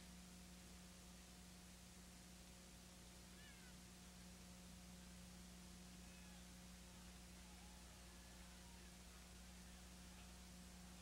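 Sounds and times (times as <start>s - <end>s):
electrical hum: 0.0s - 11.0s
tape hiss: 0.0s - 11.0s.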